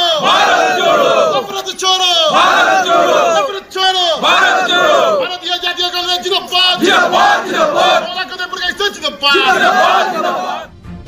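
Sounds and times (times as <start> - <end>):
crowd of men chanting: 0.0 - 5.4, 6.4 - 10.7.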